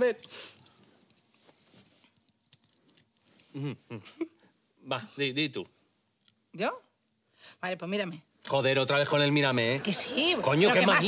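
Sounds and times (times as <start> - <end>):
faint rustling: 0.5 - 3.6
person humming: 3.6 - 4.0.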